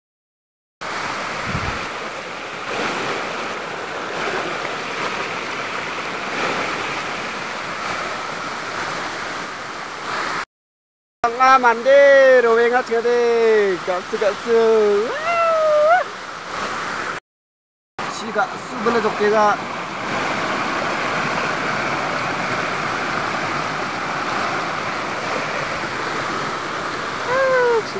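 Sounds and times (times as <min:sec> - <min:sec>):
stream rushing over rocks: 0:00.8 - 0:10.4, 0:11.3 - 0:17.2, 0:18.0 - 0:27.9.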